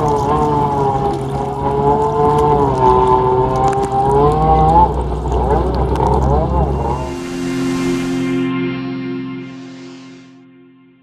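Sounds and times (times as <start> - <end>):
jet ski engine whining: 0.0 - 10.4
held music chord: 6.2 - 10.5.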